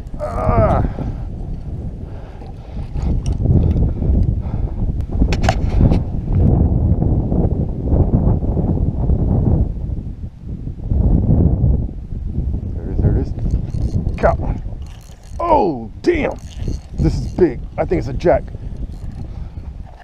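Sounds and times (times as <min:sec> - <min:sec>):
wind buffeting microphone: 0:00.0 - 0:20.0.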